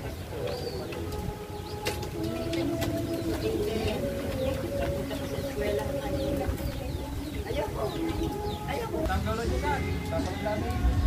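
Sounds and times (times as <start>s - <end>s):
pigeons cooing: 0.0s - 11.0s
small birds chirping: 0.0s - 11.0s.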